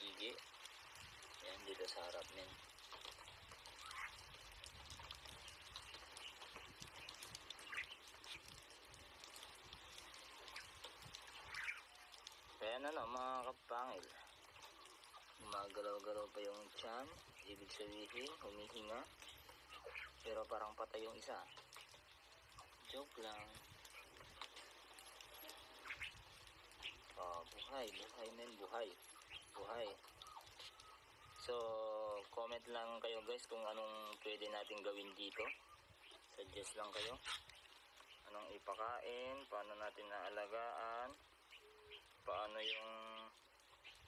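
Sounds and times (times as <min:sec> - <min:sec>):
faint chirps: 0:00.0 - 0:04.4, 0:09.8 - 0:44.0.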